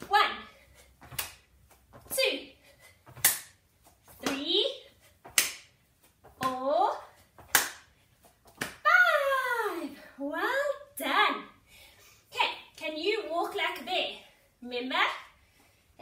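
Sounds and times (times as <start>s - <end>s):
sharp hand claps: 5.3s - 5.7s, 7.5s - 7.8s
woman calling out: 8.9s - 11.2s.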